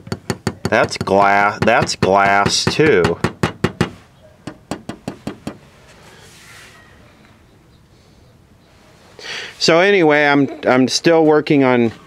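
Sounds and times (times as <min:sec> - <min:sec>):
fingertip tapping on glass: 0:00.0 - 0:05.6.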